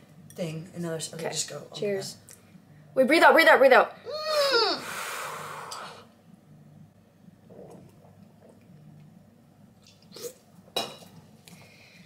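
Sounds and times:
forceful exhale through mouth: 4.6 - 6.1.

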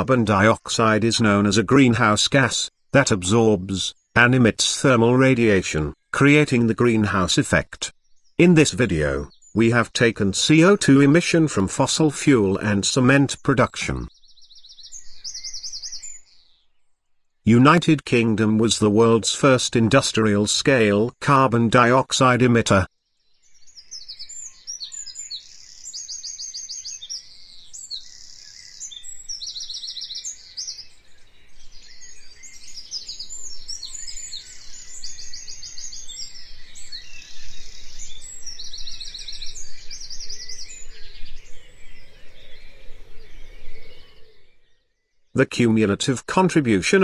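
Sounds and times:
birds chirping and trilling: 0.0 - 47.0.

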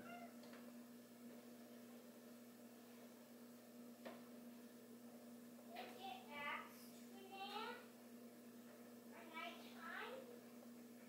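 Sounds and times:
faint high-pitched call: 0.0 - 0.4
steady low hum: 0.0 - 11.0.

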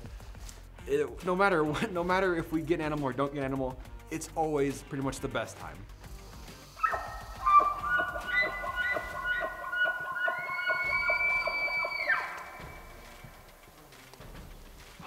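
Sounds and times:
elk bugling: 6.6 - 13.9.

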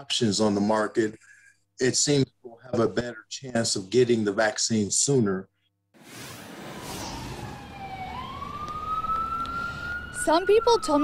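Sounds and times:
rain hiss and road noise: 6.0 - 10.0
emergency siren wailing: 6.4 - 11.0.

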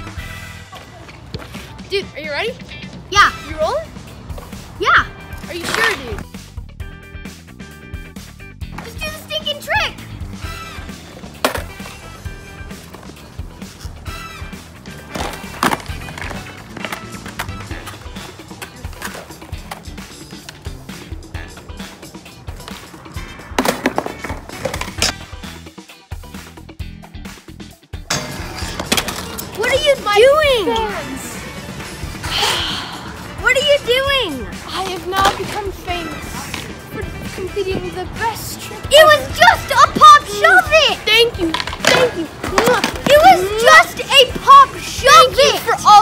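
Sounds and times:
background music: 0.0 - 46.0
skateboard clacks on concrete: 11.2 - 12.1, 14.9 - 20.8, 21.8 - 25.3, 34.8 - 36.8, 41.3 - 43.4.

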